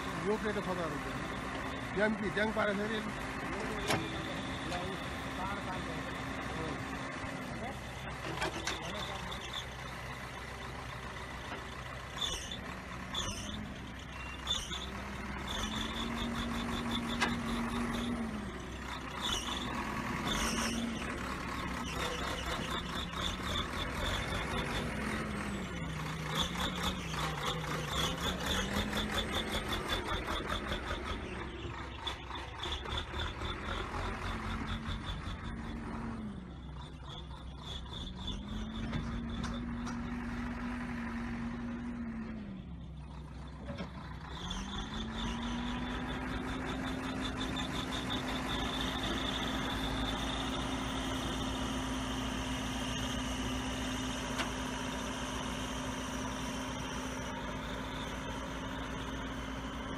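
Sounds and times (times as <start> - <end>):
earthmoving machine engine: 0.0 - 59.9.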